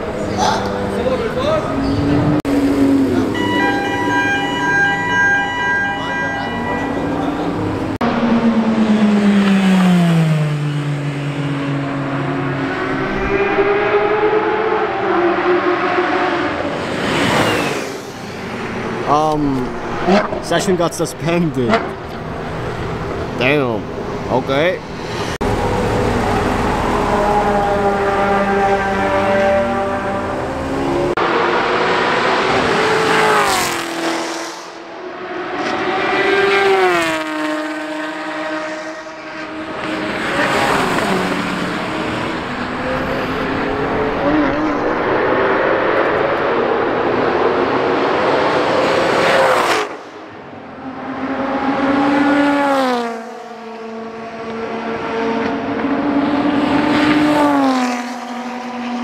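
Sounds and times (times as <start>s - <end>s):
sports cars driving past: 0.0s - 59.0s.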